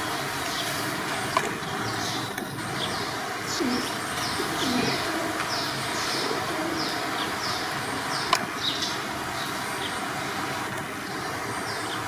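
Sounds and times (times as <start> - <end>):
birds high falling chirps: 0.0 - 12.0
lower deeper bird calls: 0.0 - 12.0.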